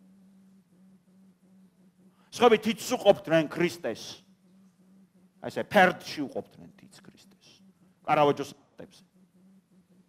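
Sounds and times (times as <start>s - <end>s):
low steady hum: 0.0s - 10.0s
man lecturing: 2.3s - 4.2s, 5.4s - 9.0s.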